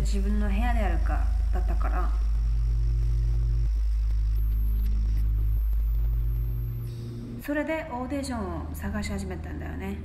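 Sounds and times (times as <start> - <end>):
low synthesizer drone: 0.0 - 10.0.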